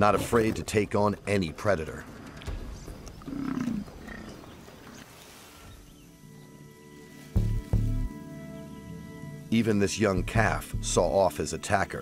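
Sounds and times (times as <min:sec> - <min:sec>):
low animal call: 0:03.2 - 0:04.6.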